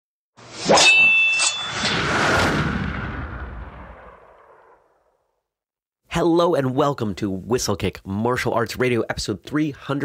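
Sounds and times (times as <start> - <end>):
whoosh: 0.4 - 5.2
metallic clang ringing: 0.7 - 2.0.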